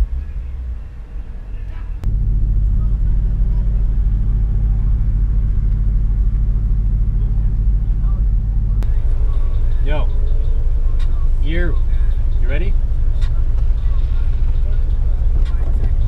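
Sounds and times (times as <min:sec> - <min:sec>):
car engine idling: 0:00.0 - 0:16.0.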